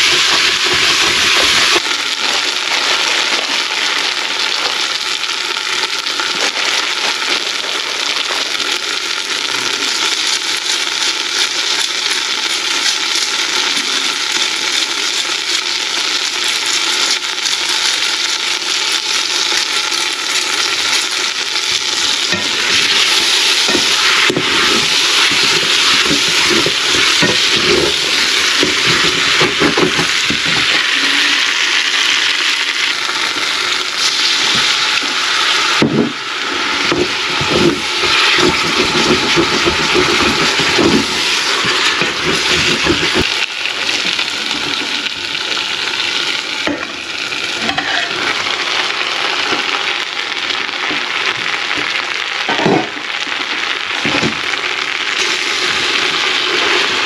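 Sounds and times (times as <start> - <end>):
meat sizzling in a pan: 0.0 - 57.0
wooden spoon scraping a pan: 36.8 - 43.3.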